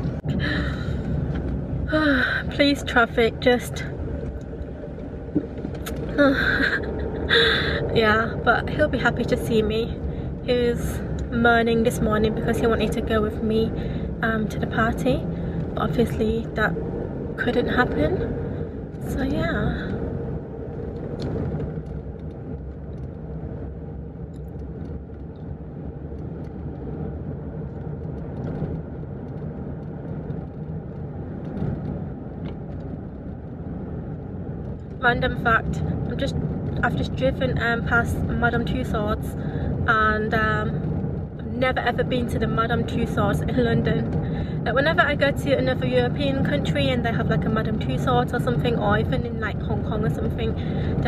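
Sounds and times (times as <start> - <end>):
car cabin rumble: 0.0 - 51.0
woman sighing: 6.1 - 7.8.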